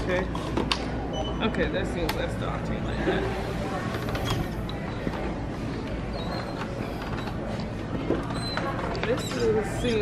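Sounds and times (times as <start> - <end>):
stroller wheels creaking and clicking: 5.8 - 10.0.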